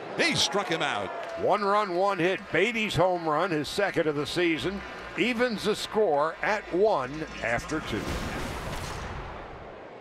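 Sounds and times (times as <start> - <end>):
rushing boom: 7.7 - 9.8.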